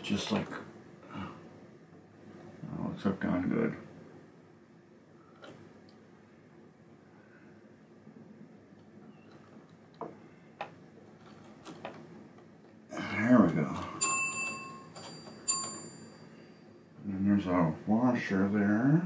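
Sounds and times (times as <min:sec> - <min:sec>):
pinball machine bell ringing: 0:13.8 - 0:16.9.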